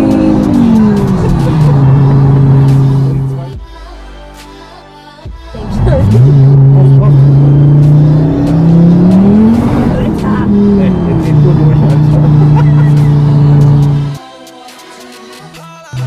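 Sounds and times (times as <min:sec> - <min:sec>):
car engine revving: 0:00.0 - 0:03.6, 0:05.6 - 0:14.2.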